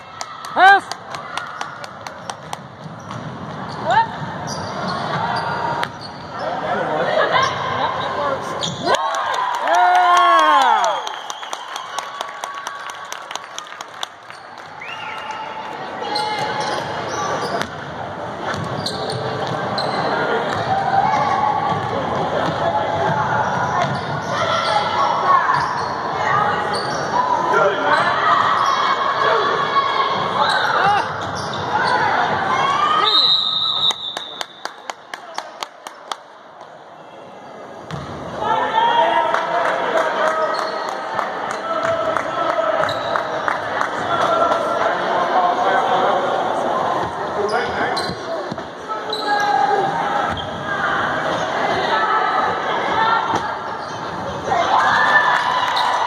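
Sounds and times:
spectators' voices and shouts: 0:19.3 - 0:33.9, 0:36.6 - 0:56.0.

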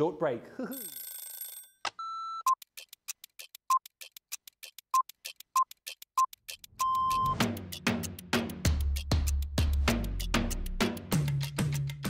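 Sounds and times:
fast clock-like ticking: 0:02.5 - 0:08.2
short steady beep: 0:06.8 - 0:07.4.

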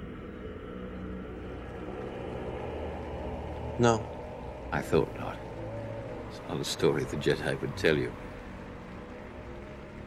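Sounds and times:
low droning hum: 0:00.0 - 0:10.0.

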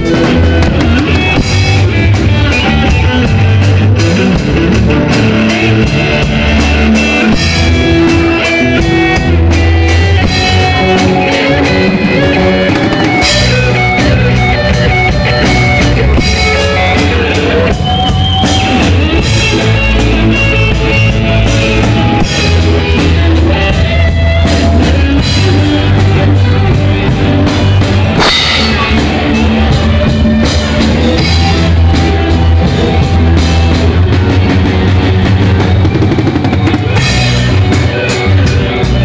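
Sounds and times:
bending lead guitar notes: 0:00.0 - 0:39.0
live rock band playing: 0:00.0 - 0:39.0.

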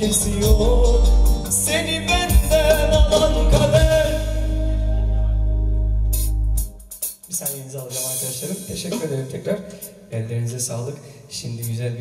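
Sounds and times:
man singing: 0:00.0 - 0:05.4
live pop band playing: 0:00.0 - 0:09.9
drum hits: 0:02.3 - 0:04.2.

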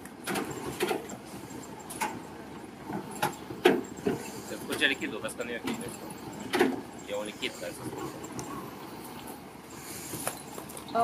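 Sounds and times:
sharp clicks and knocks: 0:00.0 - 0:02.2.

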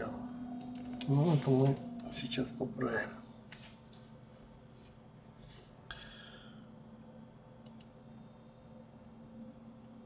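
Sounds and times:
faint low hum: 0:00.0 - 0:10.0
computer mouse clicks: 0:07.6 - 0:08.0.

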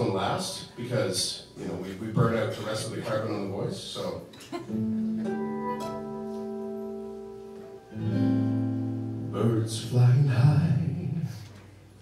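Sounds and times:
acoustic guitar: 0:04.3 - 0:12.0.

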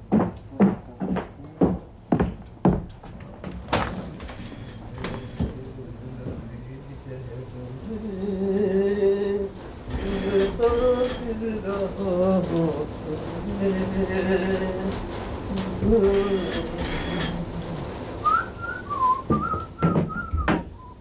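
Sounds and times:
steady hiss: 0:00.8 - 0:21.0
person singing slow tune: 0:04.3 - 0:21.0
whistled tune: 0:18.2 - 0:21.0.

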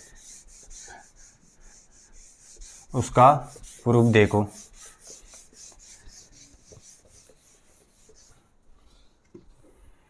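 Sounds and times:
duster rubbing whiteboard: 0:00.0 - 0:08.5.

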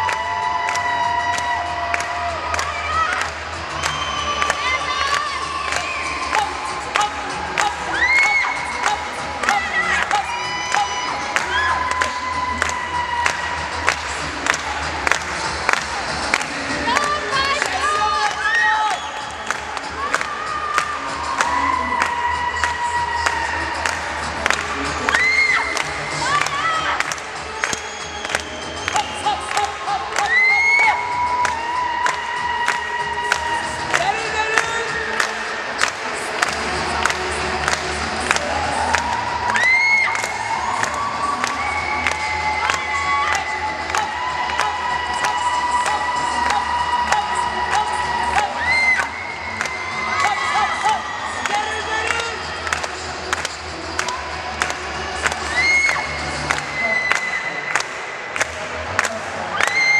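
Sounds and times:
rising whoops: 0:00.0 - 0:06.7, 0:07.6 - 0:08.6, 0:25.0 - 0:27.0, 0:30.2 - 0:34.0, 0:38.4 - 0:51.8, 0:55.4 - 0:57.8, 0:59.5 - 0:59.9
rock and roll dance music: 0:00.0 - 0:59.9
children cheering and shouting: 0:07.6 - 0:13.8, 0:24.9 - 0:27.1, 0:38.4 - 0:52.2, 0:54.1 - 0:57.6, 0:59.5 - 0:59.9.

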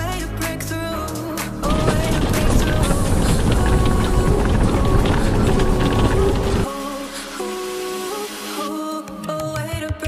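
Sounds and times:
background music: 0:00.0 - 0:10.0
motorhome rolling over gravel: 0:01.6 - 0:07.6.

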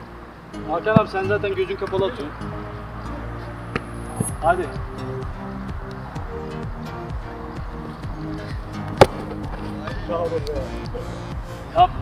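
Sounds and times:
background music: 0:00.0 - 0:12.0
football kick thud: 0:08.9 - 0:09.6.

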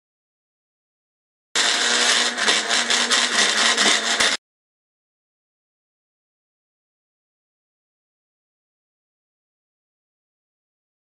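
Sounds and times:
electric blender running: 0:01.6 - 0:04.4.

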